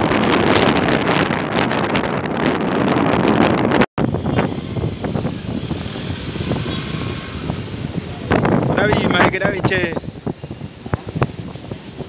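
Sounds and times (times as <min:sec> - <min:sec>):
road and traffic noise: 0:00.0 - 0:12.0
wind buffeting microphone: 0:00.0 - 0:12.0.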